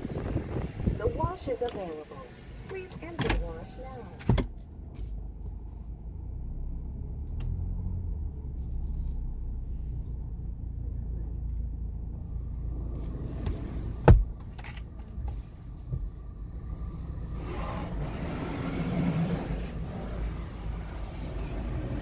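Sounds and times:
car wash machinery rushing: 0.0s - 4.2s, 16.5s - 22.0s
car engine rumble inside cabin: 0.0s - 22.0s.

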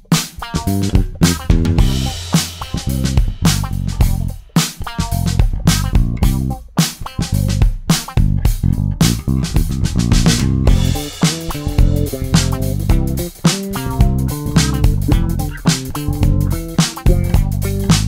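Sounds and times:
drum kit beat: 0.0s - 18.0s
electric bass playing low notes: 0.5s - 6.6s, 7.2s - 18.0s.

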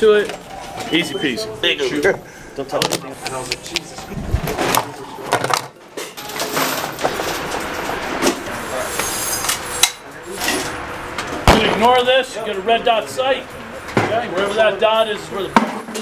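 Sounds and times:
indistinct voices: 0.0s - 15.6s.

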